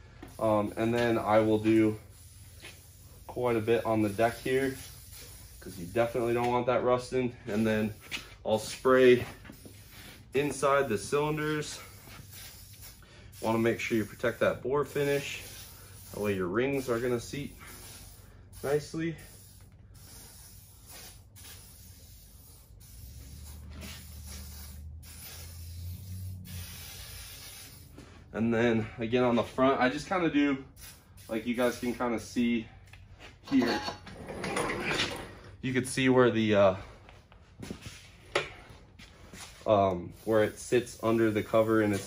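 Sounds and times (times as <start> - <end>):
aerosol can spraying: 0.2 - 6.7, 7.5 - 28.0, 30.7 - 32.1, 39.4 - 42.0.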